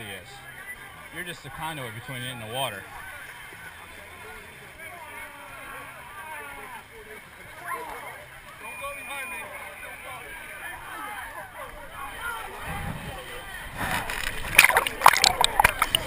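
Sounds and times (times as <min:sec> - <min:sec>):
chatter of many voices: 0:00.0 - 0:16.0
splashing muddy water: 0:12.5 - 0:16.0.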